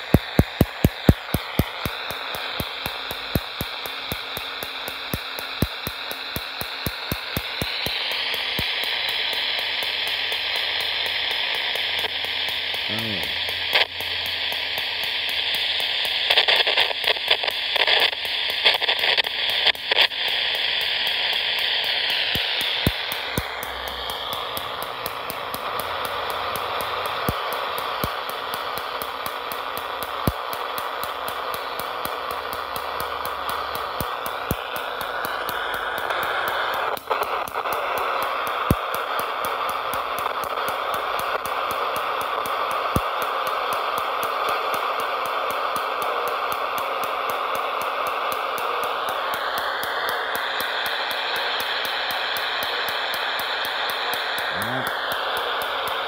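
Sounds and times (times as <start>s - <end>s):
radio static and hiss: 0.0s - 56.0s
sharp clicks: 0.0s - 56.0s.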